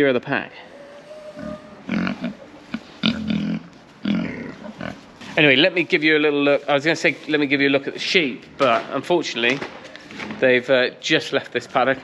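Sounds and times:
pigs grunting: 0.7 - 5.1.

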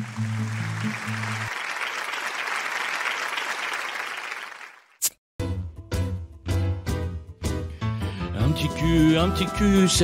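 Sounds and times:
audience applause: 0.0 - 4.9.

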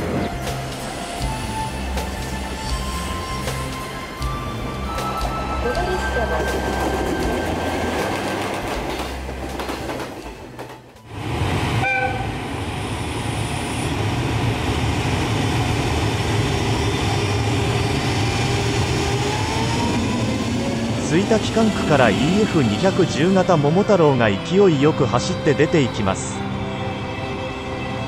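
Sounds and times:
train rumbling on tracks: 0.0 - 28.0
short high horn toot: 11.8 - 12.3
rising whine: 12.4 - 23.0.

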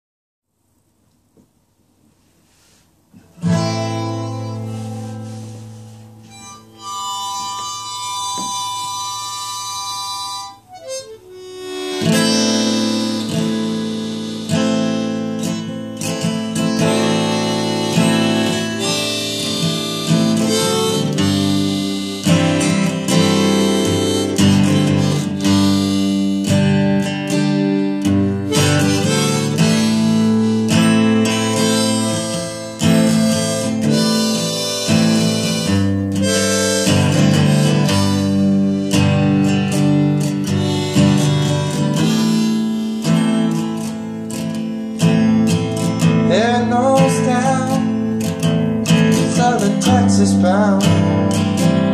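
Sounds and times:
strummed acoustic guitar: 3.2 - 51.9
harmonica: 3.3 - 51.9.

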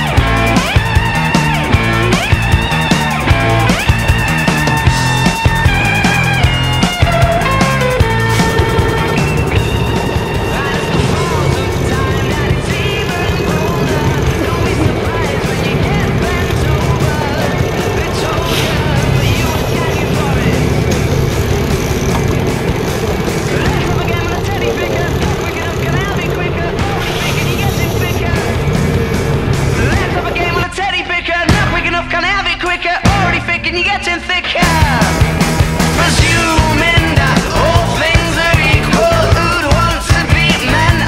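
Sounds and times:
loud wind: 0.0 - 30.8
water noise: 0.0 - 32.9
boat engine running: 0.0 - 41.0
faint voices: 5.3 - 35.0.

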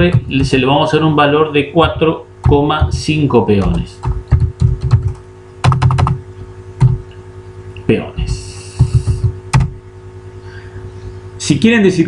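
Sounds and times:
keyboard typing: 1.8 - 6.2, 8.3 - 9.7.

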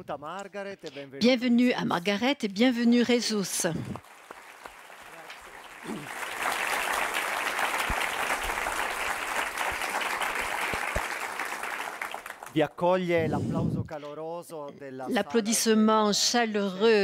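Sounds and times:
audience applauding: 3.8 - 12.8.

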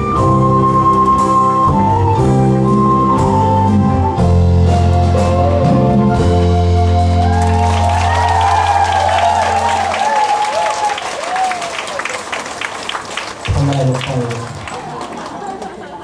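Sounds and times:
audience applauding and cheering: 6.4 - 16.0.

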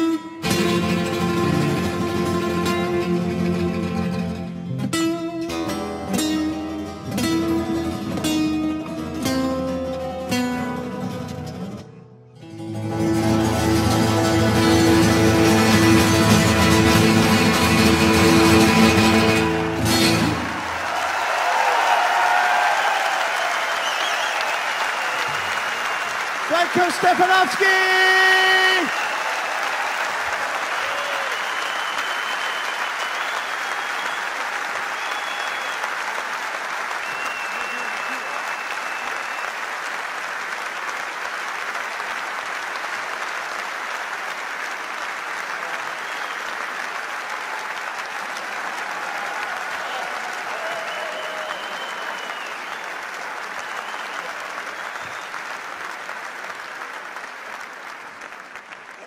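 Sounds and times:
large audience applauding: 0.0 - 11.8, 12.6 - 59.0
faint whistles: 23.7 - 24.5, 31.3 - 34.4, 35.0 - 35.9, 37.0 - 39.6, 50.8 - 53.0, 53.6 - 55.5.

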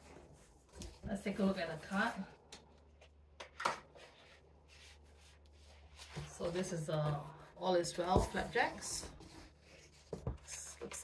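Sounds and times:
paper and cardboard handling: 3.5 - 11.0.

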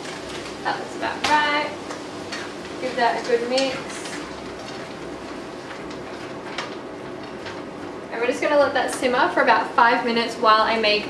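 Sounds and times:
food sizzling in frying pan: 0.0 - 11.0.

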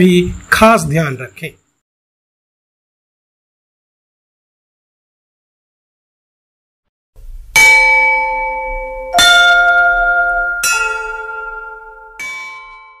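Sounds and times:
struck bell chime notes: 7.6 - 13.0.

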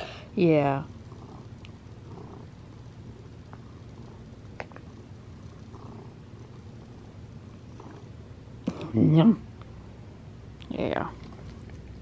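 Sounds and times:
cat purring: 0.6 - 10.2.

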